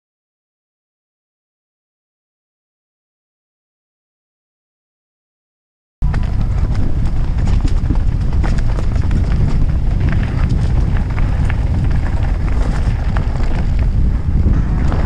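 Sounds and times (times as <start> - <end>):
bike chain and frame clatter: 6.0 - 15.0
tyres on dirt: 6.0 - 15.0
wind rumble on microphone: 6.0 - 15.0.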